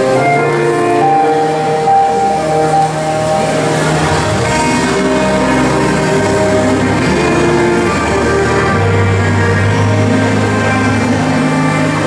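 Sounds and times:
keyboard organ chords: 0:00.0 - 0:12.0.

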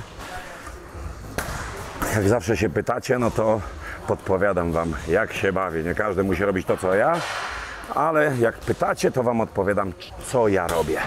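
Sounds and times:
low hall background noise: 0:00.0 - 0:11.0.

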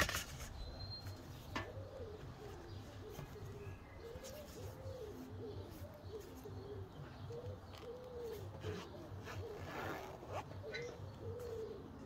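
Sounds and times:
dove cooing: 0:01.3 - 0:12.0.

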